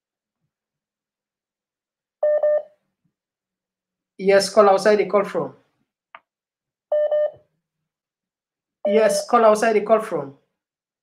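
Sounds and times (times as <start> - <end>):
phone line beeps: 2.2 - 2.7, 6.9 - 7.4, 8.8 - 9.4.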